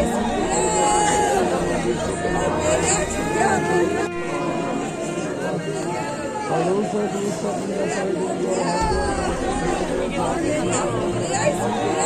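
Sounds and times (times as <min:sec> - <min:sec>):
voices talking: 0:00.0 - 0:12.0.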